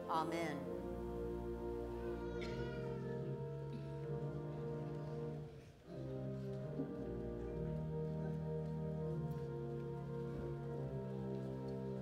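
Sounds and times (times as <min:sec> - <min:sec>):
organ playing sustained chords: 0:00.0 - 0:12.0.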